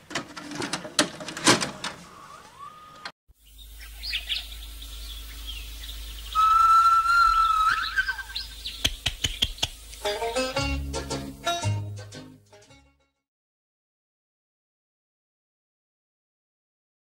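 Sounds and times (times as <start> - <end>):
birdsong chirps and calls: 2.0 - 10.5
loud long whistled note: 6.3 - 8.4
sharp clicks: 8.8 - 10.1.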